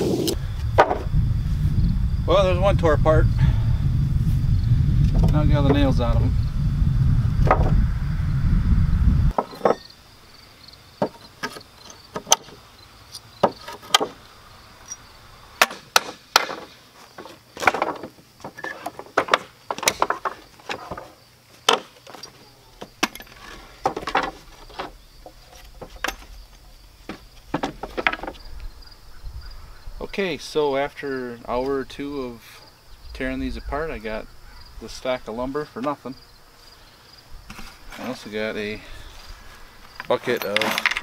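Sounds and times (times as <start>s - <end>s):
boards creaking: 0.0s - 1.2s, 7.4s - 7.8s, 9.3s - 10.0s, 11.0s - 12.6s, 13.4s - 14.2s, 15.6s - 28.5s
crickets chirping: 0.0s - 41.0s.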